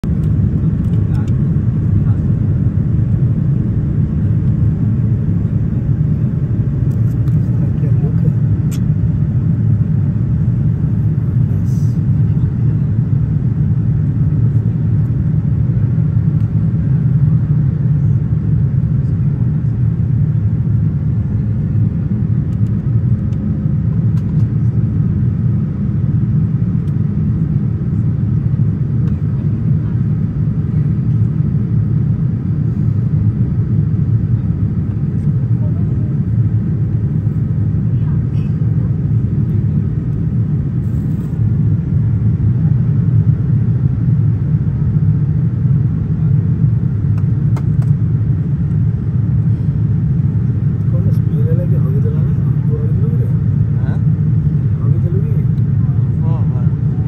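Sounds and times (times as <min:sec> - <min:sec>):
airliner cabin engine rumble: 0:00.0 - 0:57.0.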